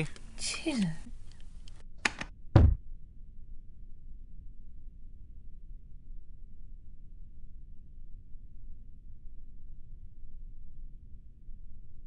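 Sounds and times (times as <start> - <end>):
explosion thump: 2.5 - 2.8.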